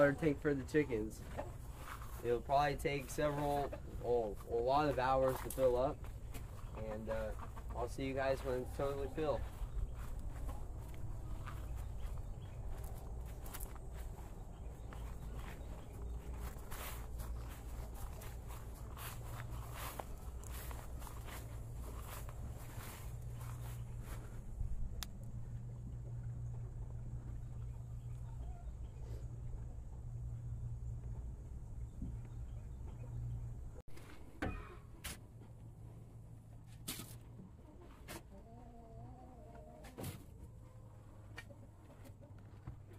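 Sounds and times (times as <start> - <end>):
steady low hum: 0.0 - 34.2
footsteps on cargo bed: 1.2 - 2.4, 3.4 - 24.5.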